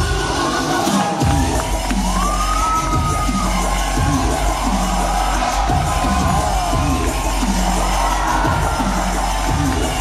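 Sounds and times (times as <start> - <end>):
crowd cheering: 0.0 - 10.0
dubstep music with heavy bass: 0.0 - 10.0.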